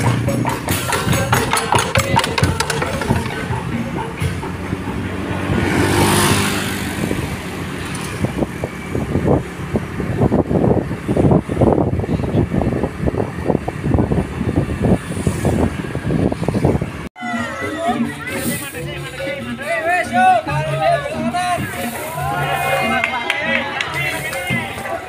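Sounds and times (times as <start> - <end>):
vehicle passing: 0.0 - 17.0
vehicle engine running: 0.0 - 17.1.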